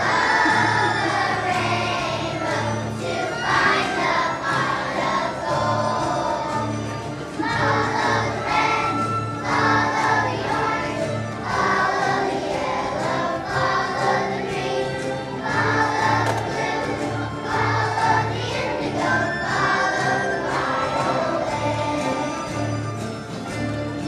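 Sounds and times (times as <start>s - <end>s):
children's choir singing: 0.0s - 24.0s.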